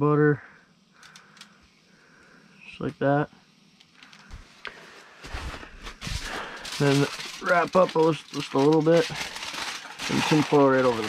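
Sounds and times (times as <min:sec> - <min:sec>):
aluminium foil crinkling: 0:03.9 - 0:11.0.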